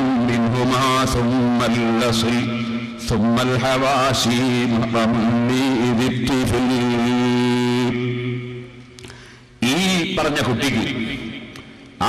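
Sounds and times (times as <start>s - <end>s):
man chanting a held note: 0.0s - 8.8s.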